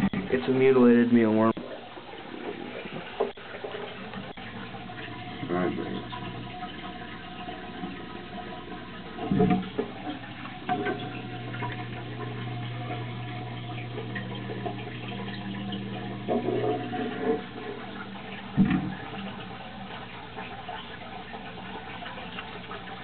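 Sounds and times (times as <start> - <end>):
water running and splashing: 0.0 - 23.0.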